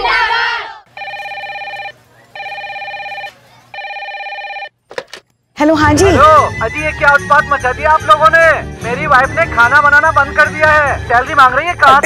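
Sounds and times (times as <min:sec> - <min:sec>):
telephone warbling ring: 0:01.0 - 0:04.7.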